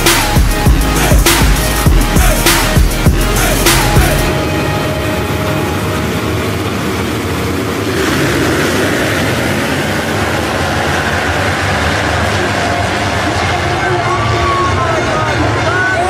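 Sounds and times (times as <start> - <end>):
motocross bikes revving: 0.0 - 16.0.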